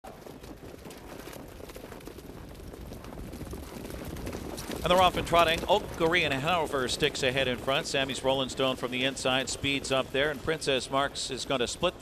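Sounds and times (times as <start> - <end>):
steady rushing noise: 3.2 - 12.0.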